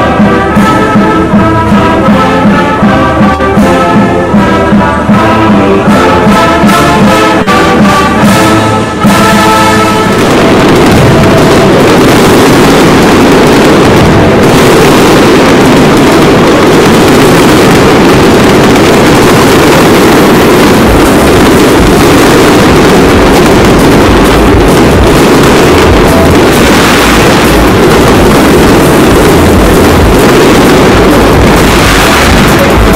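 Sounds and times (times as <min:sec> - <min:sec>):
fireworks bangs and crackle: 0:00.0 - 0:32.9.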